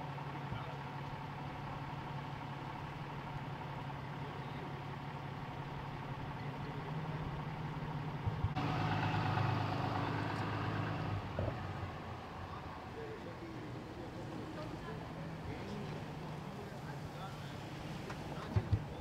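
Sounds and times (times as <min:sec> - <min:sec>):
vehicle engine idling: 0:00.0 - 0:19.0.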